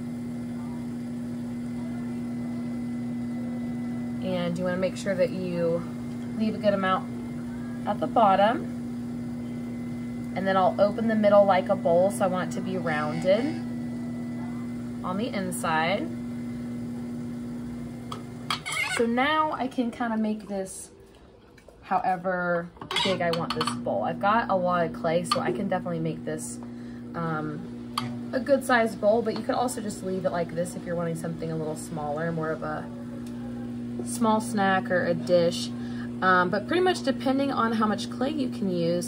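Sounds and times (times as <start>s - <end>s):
pottery wheel motor hum: 0.0s - 39.0s.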